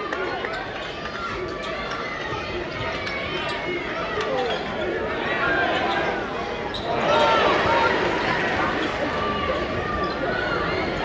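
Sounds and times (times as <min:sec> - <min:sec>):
crowd voices overlapping: 0:00.0 - 0:11.0.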